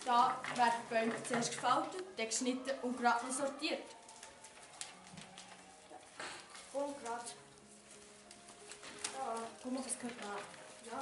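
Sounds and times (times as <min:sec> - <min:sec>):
paper rustling: 0:00.0 - 0:11.0.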